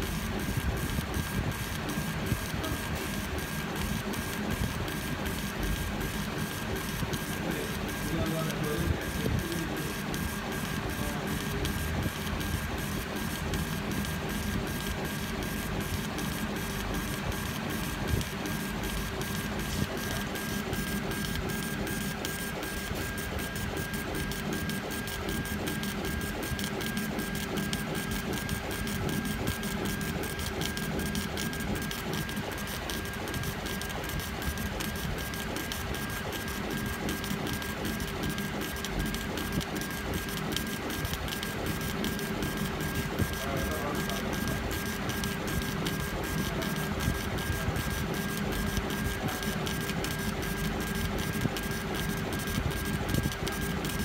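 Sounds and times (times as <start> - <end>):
steady machine whine: 0.0 - 54.0.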